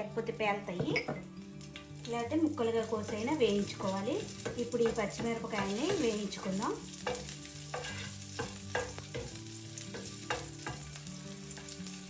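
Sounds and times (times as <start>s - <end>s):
chillies sizzling in hot oil: 0.0s - 12.0s.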